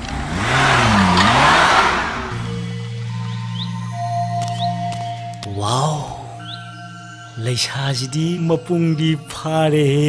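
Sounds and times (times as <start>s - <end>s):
jeep engine revving: 0.0s - 3.7s.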